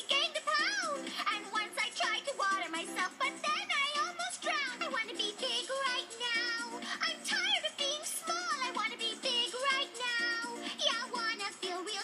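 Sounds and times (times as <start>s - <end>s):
high voice singing with vibrato: 0.0s - 12.0s
instrumental backing: 0.0s - 12.0s.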